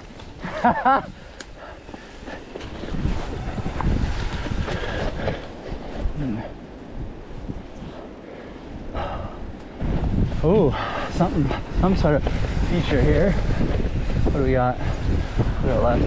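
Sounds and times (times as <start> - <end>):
rustle: 0.0 - 16.0
bike rattling over bumps: 1.5 - 8.2, 8.8 - 16.0
tyres rumbling over dirt: 8.8 - 16.0.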